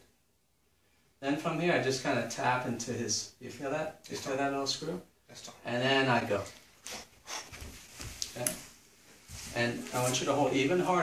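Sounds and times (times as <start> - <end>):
bare feet and clothing scuffling: 6.5 - 11.0.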